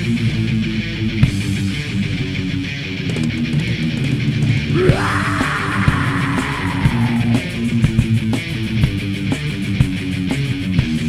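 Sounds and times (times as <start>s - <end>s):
distorted metal guitar and bass: 0.0s - 11.0s
drums: 0.0s - 11.0s.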